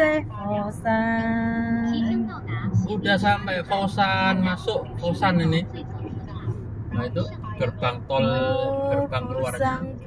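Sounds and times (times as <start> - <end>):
road noise inside car: 0.0 - 10.0.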